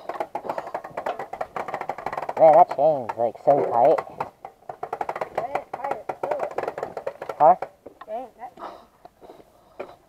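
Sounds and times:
bike chain clicking and knocking: 0.0s - 8.2s.

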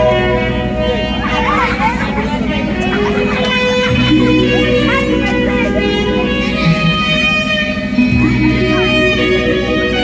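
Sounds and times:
background music: 0.0s - 10.0s
voices calling out and chattering: 0.0s - 10.0s.

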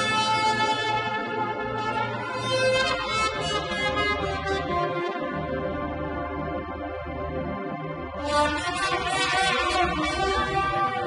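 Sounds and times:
instrumental music with held notes: 0.0s - 11.0s.

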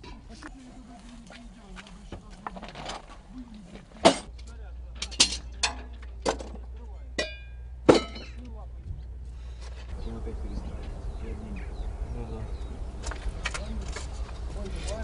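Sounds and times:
low steady rumble: 0.0s - 14.9s
sharp metallic clinks and knocks: 4.0s - 8.5s.

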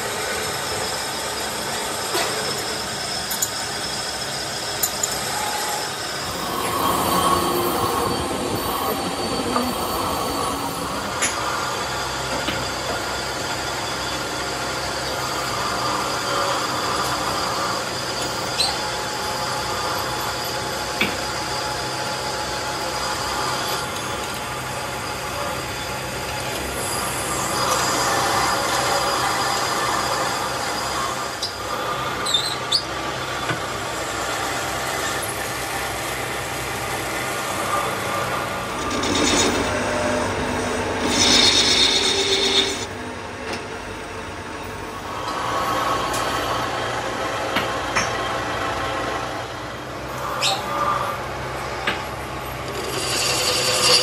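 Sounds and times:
thin high whining tones: 0.0s - 33.2s, 34.6s - 43.0s
metalworking machinery noise: 0.0s - 54.0s.

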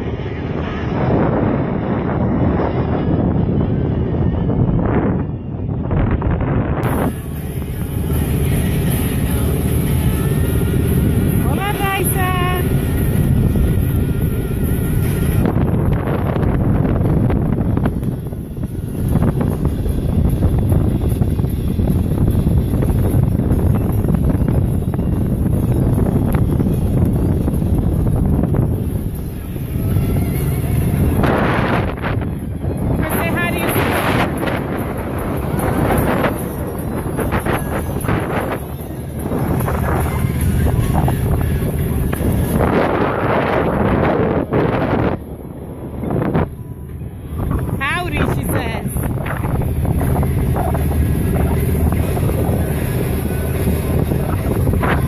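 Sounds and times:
boat motor drone: 0.0s - 55.0s
wind rumbling on microphone: 0.0s - 55.0s.

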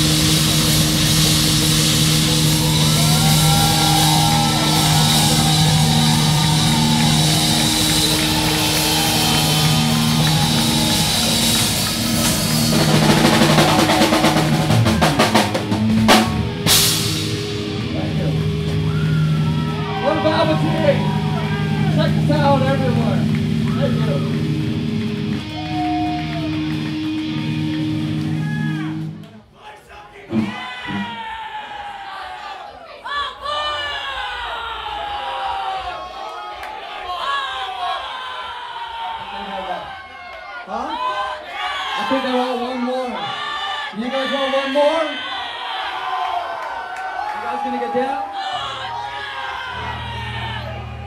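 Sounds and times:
drum crash: 0.0s - 20.0s
guitar and bass chord ringing: 0.0s - 29.2s, 49.1s - 51.0s
crowd shouting and cheering: 0.0s - 51.0s.

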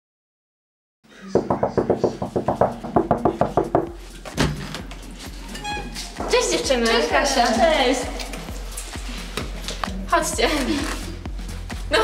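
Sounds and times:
rapid knocking on a door: 1.4s - 4.6s
heavy door thump: 1.4s - 5.0s.

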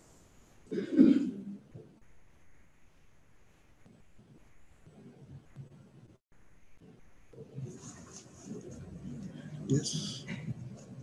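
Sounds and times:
person coughing: 0.7s - 1.5s.

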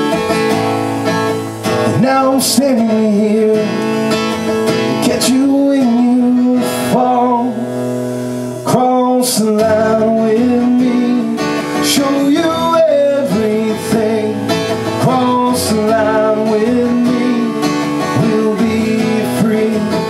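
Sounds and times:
acoustic guitar strummed: 0.0s - 20.0s
man singing: 1.7s - 7.9s, 8.6s - 20.0s.

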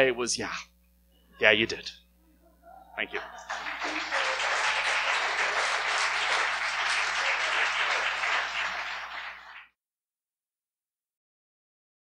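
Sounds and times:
audience applauding: 3.1s - 9.7s.

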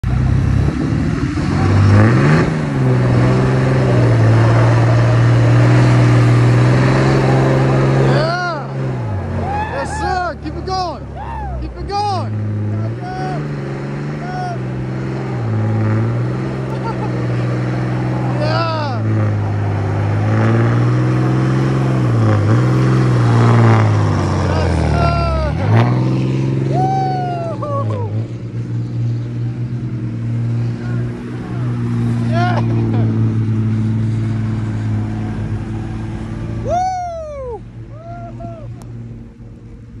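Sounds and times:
pickup truck engines droning: 0.0s - 40.0s
people whooping and cheering: 9.3s - 10.3s, 11.1s - 11.8s, 24.5s - 25.6s, 26.7s - 28.2s, 36.6s - 38.8s.

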